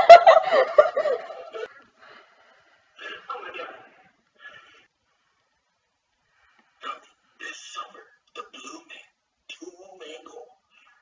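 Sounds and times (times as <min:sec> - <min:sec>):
boy laughing: 0:00.0 - 0:01.7.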